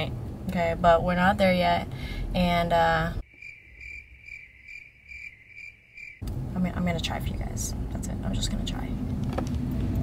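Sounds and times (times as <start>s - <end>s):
crickets chirping: 3.2s - 6.2s.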